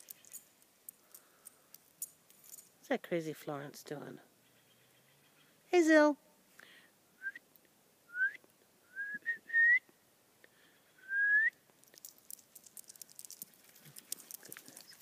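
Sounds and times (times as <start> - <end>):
person whistling upward slides: 8.1 - 9.9, 11.0 - 11.6.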